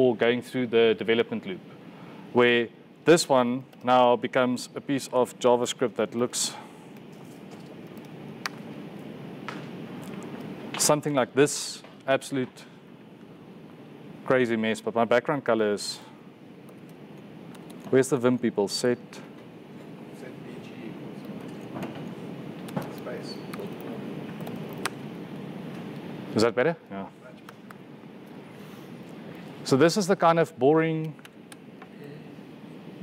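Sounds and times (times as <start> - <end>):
low room noise: 0.0 - 33.0
laptop keystroke clicks: 22.6 - 25.0.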